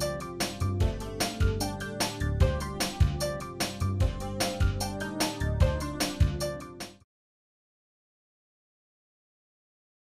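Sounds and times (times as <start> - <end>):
closing music: 0.0 - 7.0.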